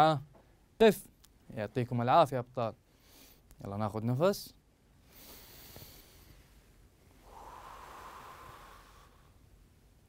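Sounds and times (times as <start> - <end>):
man breathing deeply: 5.1 - 6.6, 7.2 - 9.6.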